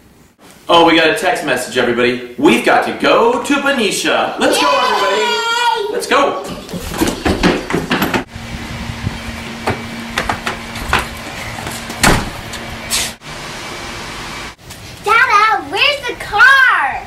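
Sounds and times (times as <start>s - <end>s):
kids calling out: 4.4s - 6.5s
footsteps: 6.4s - 8.3s, 9.6s - 13.2s
storm door knocking and clattering: 6.5s - 8.3s, 9.6s - 11.2s
steady low hum: 6.6s - 15.0s.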